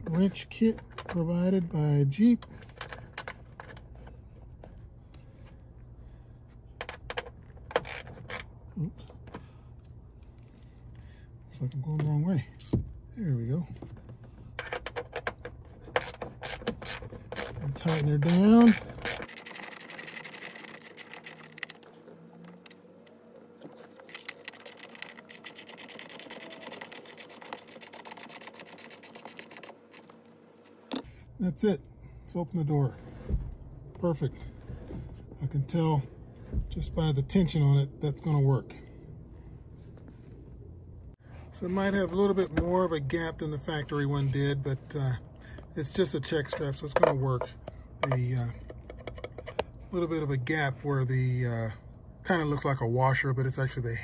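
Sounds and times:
hand ratchet clicking: 15.9 - 21.9, 24.0 - 30.1.

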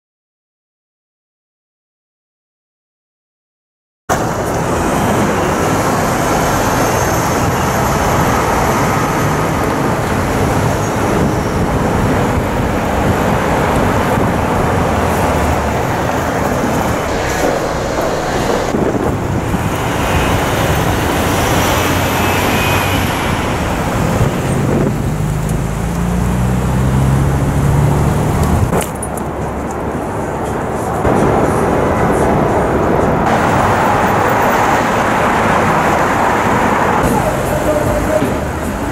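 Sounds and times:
cars driving past: 4.1 - 38.9
engine accelerating: 8.1 - 28.8.

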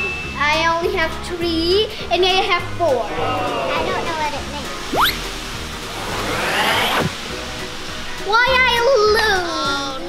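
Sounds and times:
background music: 0.0 - 10.0
rising whoosh sound effect: 4.9 - 7.2.

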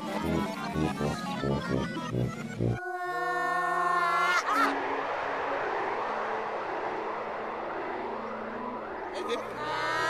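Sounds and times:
steady rushing noise: 4.6 - 9.7.

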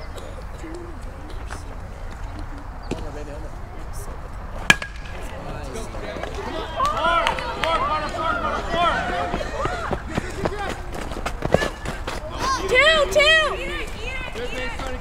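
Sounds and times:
voices shouting: 5.1 - 15.0.

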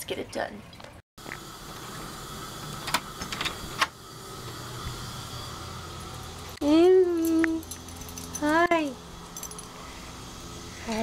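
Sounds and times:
steady low hum: 1.2 - 11.0.

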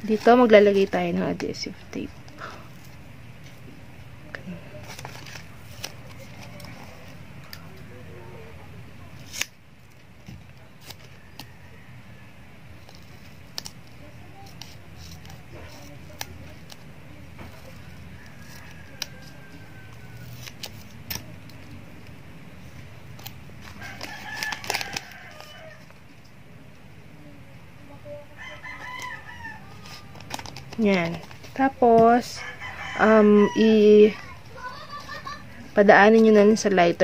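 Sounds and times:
low steady hum: 0.0 - 37.0
scissors snipping tape: 9.2 - 9.5
ribbon and plastic handled: 12.8 - 21.8, 23.1 - 26.2, 28.8 - 32.2.

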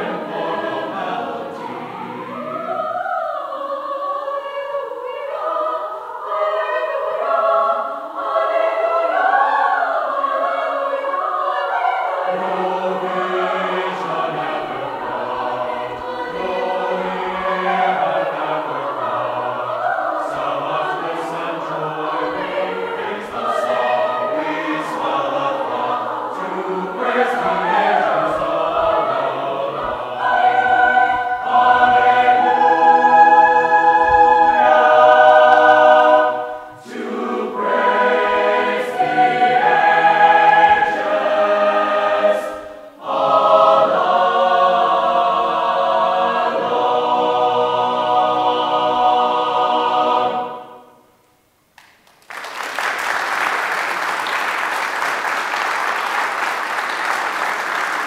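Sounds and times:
mixed choir singing: 0.0 - 51.1.

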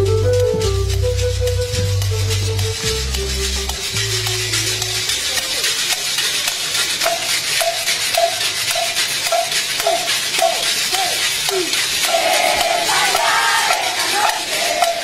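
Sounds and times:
outdoor crowd noise: 0.0 - 15.0.

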